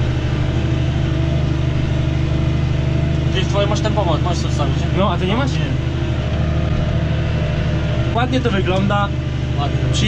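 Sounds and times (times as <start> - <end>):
tractor diesel engine droning: 0.0 - 10.0.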